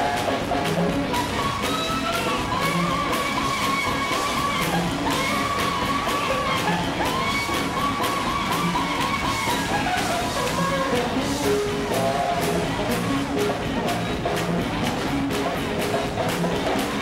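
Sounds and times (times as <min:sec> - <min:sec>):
congregation clapping: 0:00.0 - 0:17.0
steady drum beat: 0:00.0 - 0:17.0.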